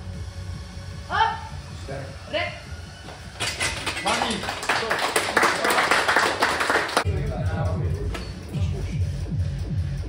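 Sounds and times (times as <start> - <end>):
clapping and cheering: 3.9 - 7.1
background music with low beat: 7.0 - 10.0.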